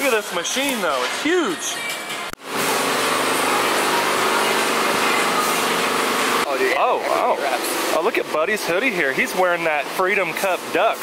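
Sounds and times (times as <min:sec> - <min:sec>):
machine whir with low hum: 0:00.0 - 0:11.0.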